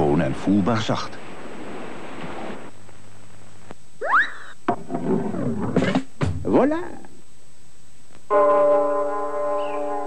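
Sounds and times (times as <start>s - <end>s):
soft hiss: 0.0s - 4.7s, 6.0s - 10.0s.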